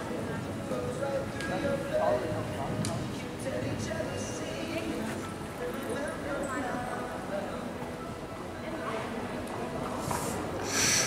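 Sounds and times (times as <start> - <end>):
indistinct voices in a hall: 0.0 - 11.0.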